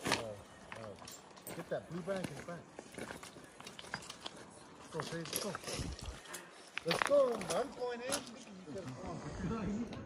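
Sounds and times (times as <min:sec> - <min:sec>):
footsteps on cobbles and gravel: 0:00.0 - 0:09.2.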